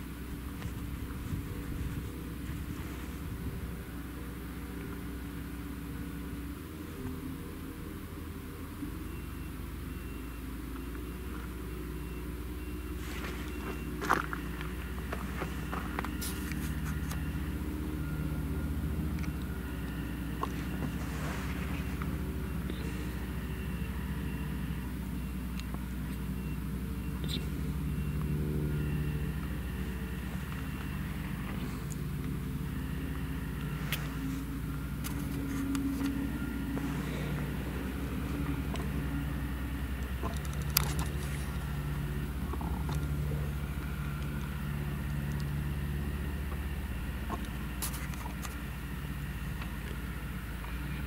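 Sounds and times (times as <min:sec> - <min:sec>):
harvester engine humming: 0:00.0 - 0:51.0.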